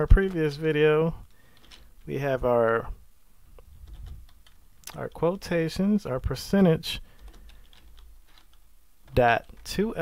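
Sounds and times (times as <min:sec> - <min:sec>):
typing on computer keyboard: 0:01.5 - 0:01.9, 0:03.8 - 0:04.6, 0:07.1 - 0:09.8.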